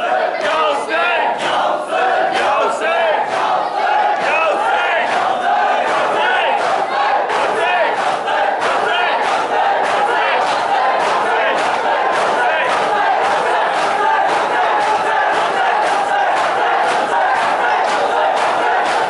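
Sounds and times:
crowd of men shouting and chanting: 0.0 - 19.0.

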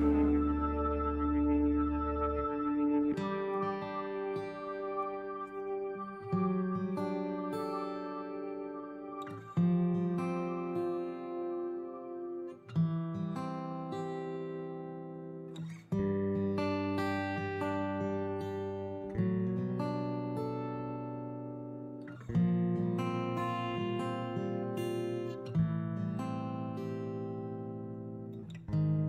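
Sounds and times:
acoustic guitar slow chords: 0.0 - 29.0.

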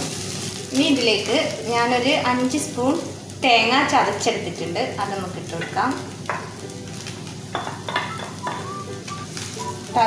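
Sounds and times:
chicken sizzling in a pan: 0.0 - 10.0.

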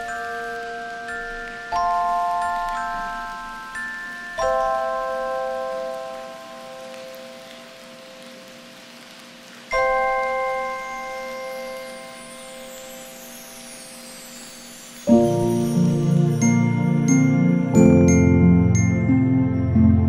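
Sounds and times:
bell-like lullaby chords: 0.0 - 9.0, 9.7 - 20.0.

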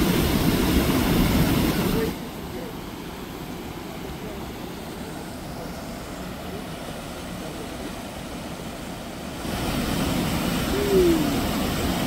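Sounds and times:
waterfall and river rapids rushing: 0.0 - 12.0.

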